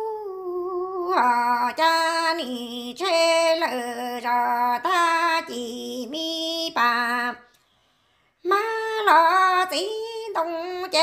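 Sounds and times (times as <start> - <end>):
woman singing unaccompanied: 0.0 - 7.6, 8.4 - 11.0.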